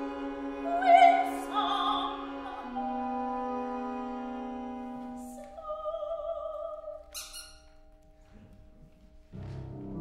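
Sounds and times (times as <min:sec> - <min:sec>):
short high squeak: 0:07.1 - 0:07.8.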